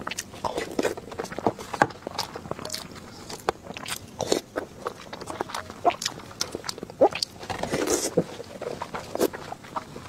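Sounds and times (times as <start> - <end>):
close chewing: 0.0 - 10.0.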